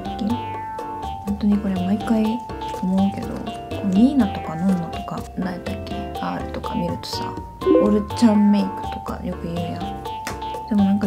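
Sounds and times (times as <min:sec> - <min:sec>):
background music with held notes: 0:00.0 - 0:11.0
woman talking: 0:00.1 - 0:00.4, 0:01.3 - 0:09.9, 0:10.7 - 0:11.0.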